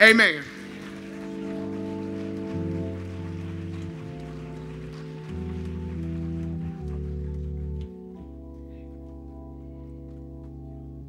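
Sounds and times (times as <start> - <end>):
organ-style keyboard chords: 0.0 - 11.0.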